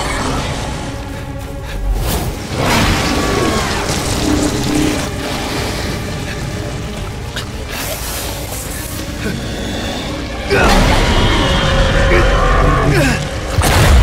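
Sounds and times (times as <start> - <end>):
dramatic film score: 0.0 - 14.0.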